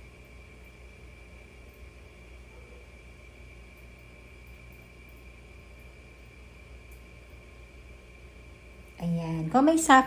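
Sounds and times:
faint high-pitched whine: 0:00.0 - 0:10.0
light hiss: 0:00.0 - 0:10.0.

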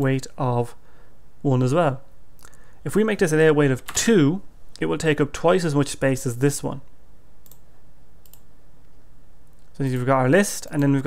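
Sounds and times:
computer mouse clicks: 0:07.4 - 0:10.1.

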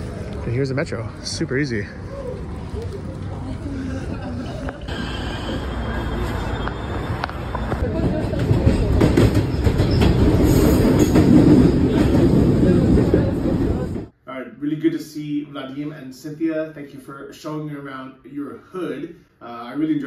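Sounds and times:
metro train rumbling: 0:00.0 - 0:14.1
street ambience: 0:00.0 - 0:14.2.

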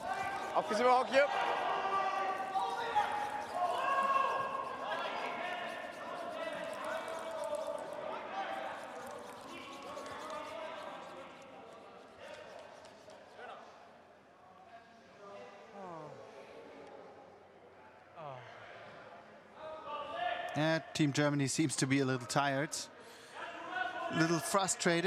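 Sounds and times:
people shouting: 0:00.0 - 0:07.4
brooms scrubbing ice: 0:00.0 - 0:11.4.

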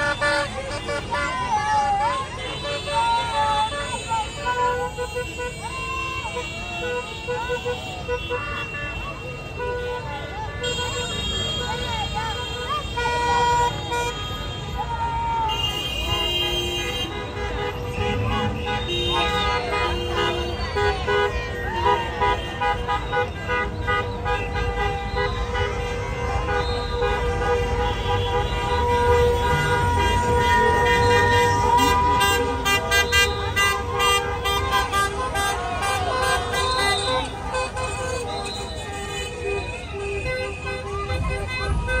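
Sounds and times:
car horns honking: 0:00.0 - 0:42.0
crowd shouting and cheering: 0:00.0 - 0:42.0
slow street traffic: 0:00.0 - 0:42.0.

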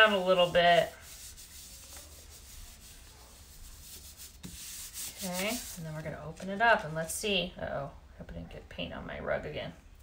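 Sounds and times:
palms swishing on paper: 0:00.0 - 0:07.0.

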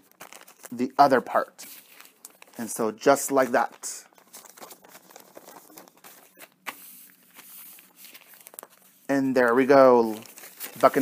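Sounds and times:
paper rustling and crinkling: 0:00.0 - 0:11.0.

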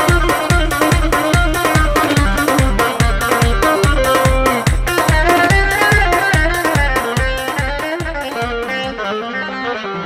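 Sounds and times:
steady drum beat: 0:00.0 - 0:09.0
plucked saz melody: 0:00.0 - 0:10.0.

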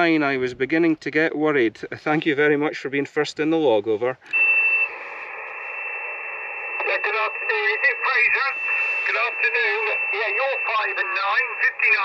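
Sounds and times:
steady high whistle: 0:04.3 - 0:07.2
radio band hiss: 0:04.3 - 0:12.0
distant voice over radio: 0:06.8 - 0:12.0.

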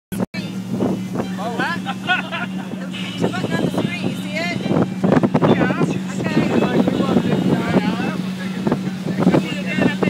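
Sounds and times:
boat motor droning: 0:00.1 - 0:10.0
people talking: 0:01.3 - 0:10.0.

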